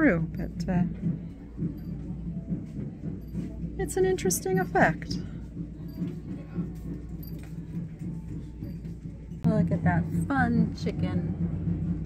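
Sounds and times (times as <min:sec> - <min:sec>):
muffled drums outside: 0:00.0 - 0:12.0.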